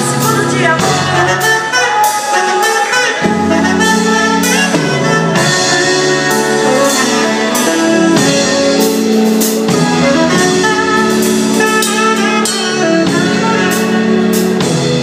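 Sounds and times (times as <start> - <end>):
drum kit: 0.0 - 15.0
saxophone: 0.0 - 15.0.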